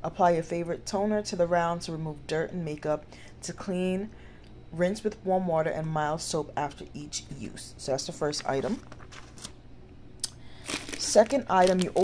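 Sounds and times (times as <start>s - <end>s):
packaging clicks and rustles: 10.6s - 12.0s.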